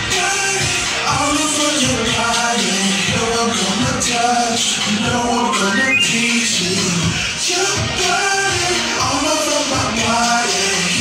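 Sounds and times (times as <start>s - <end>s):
loud r and b music: 0.0s - 11.0s.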